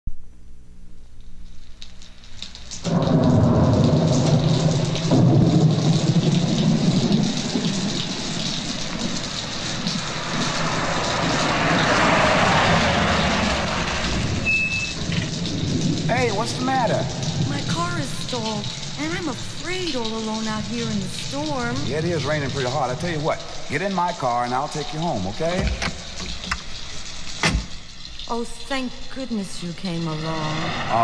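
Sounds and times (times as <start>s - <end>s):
heavy rain: 1.5s - 31.0s
thunder rumbling: 2.8s - 28.7s, 29.4s - 31.0s.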